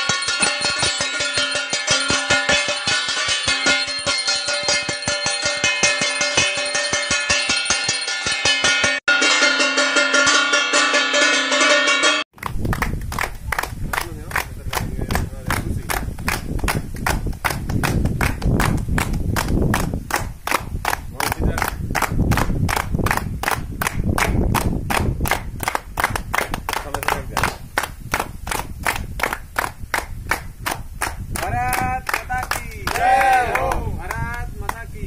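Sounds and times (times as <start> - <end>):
people clapping in unison: 12.4 - 34.9
voices: 31.4 - 35.0.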